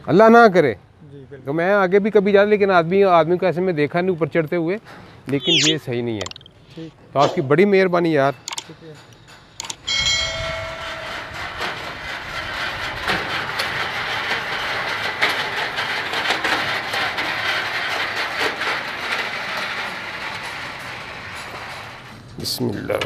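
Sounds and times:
construction hoist rattling: 8.1s - 10.0s, 11.1s - 22.4s.

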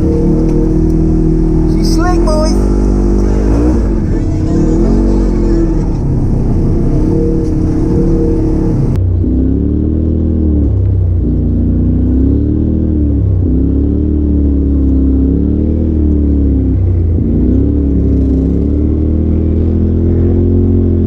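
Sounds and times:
vehicle engine revving: 0.0s - 21.0s.

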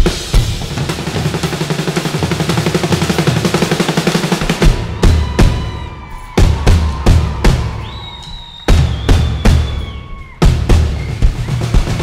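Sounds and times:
drums struck in unison: 0.0s - 12.0s.

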